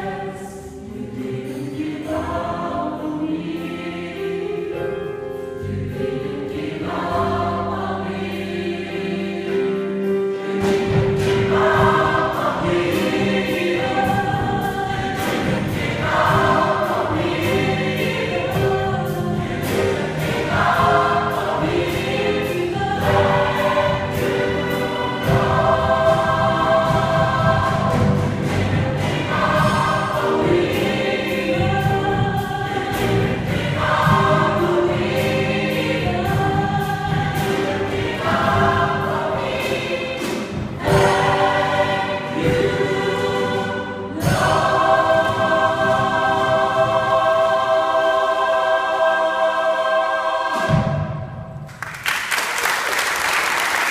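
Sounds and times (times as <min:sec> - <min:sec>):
gospel choir singing: 0:00.0 - 0:51.8
accompaniment with steady beat: 0:10.1 - 0:49.0.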